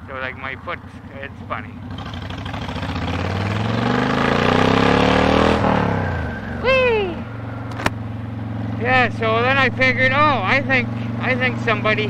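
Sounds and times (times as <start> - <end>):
motorcycle engine revving: 0.0 - 12.0.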